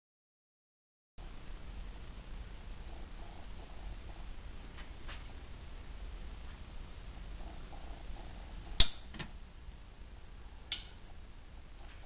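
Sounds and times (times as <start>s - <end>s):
low room hum: 1.2s - 12.0s.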